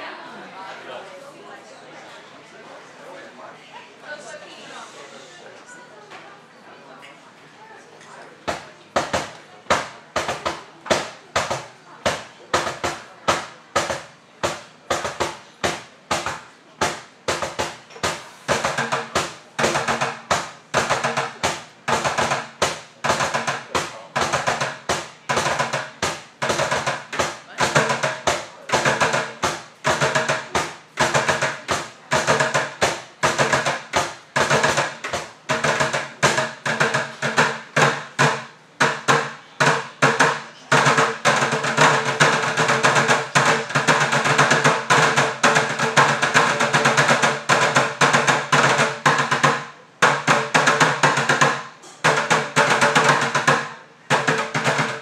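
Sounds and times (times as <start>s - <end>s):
drumsticks beating buckets: 8.4s - 55.0s.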